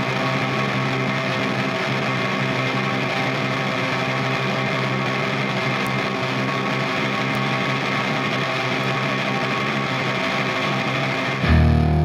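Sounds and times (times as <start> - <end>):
distorted electric guitar: 0.0 - 12.0
distorted bass guitar: 11.2 - 12.0.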